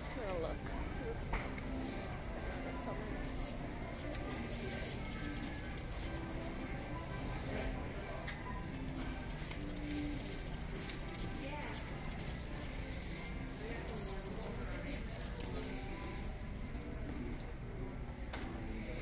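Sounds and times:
indistinct voices of shoppers: 0.0s - 19.0s.

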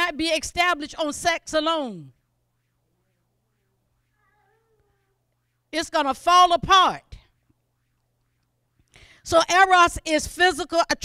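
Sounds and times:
faint low hum: 0.0s - 10.7s
woman breathing: 8.8s - 9.3s.

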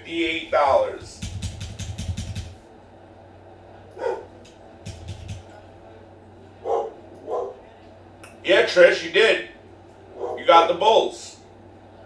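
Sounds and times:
quick run of clicks: 1.2s - 2.6s, 4.8s - 5.5s
dog barking: 4.0s - 4.4s, 6.6s - 7.6s, 10.2s - 10.5s.

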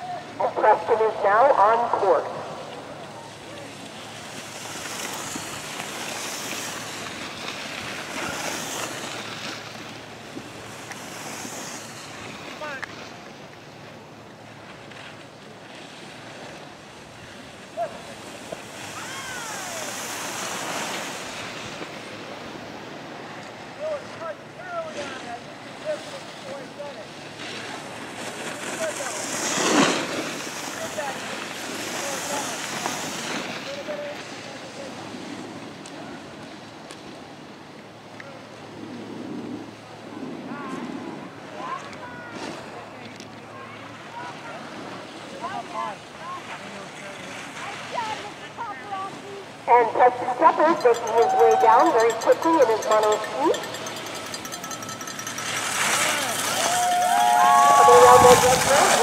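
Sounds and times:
wind hiss: 4.0s - 12.8s.

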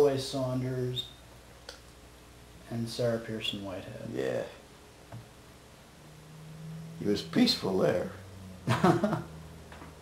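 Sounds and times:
faint hiss: 0.0s - 10.0s
faint low hum: 0.0s - 10.0s.

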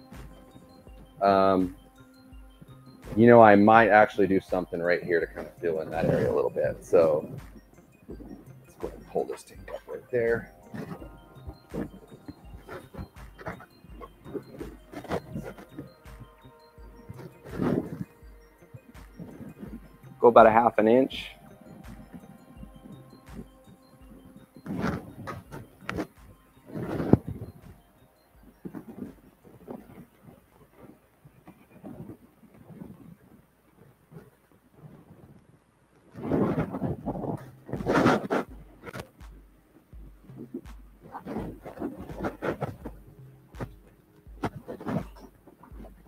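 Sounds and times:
handling noise: 0.0s - 35.4s, 36.0s - 46.0s.

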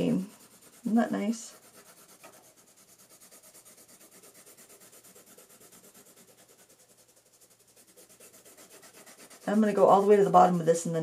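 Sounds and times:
pencil shading on paper: 0.0s - 11.0s.

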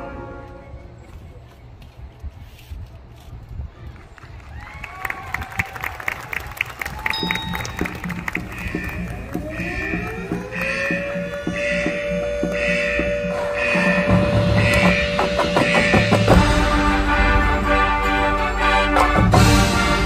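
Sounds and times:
percussion ticks: 7.1s - 16.0s
marching band playing: 7.1s - 20.0s
heavy drums: 7.5s - 20.0s.

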